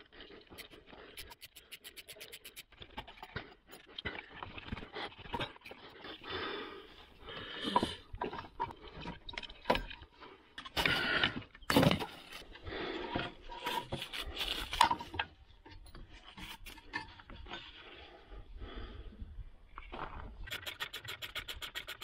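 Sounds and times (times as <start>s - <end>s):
screwdriver on hose clamp: 0.6s - 2.7s.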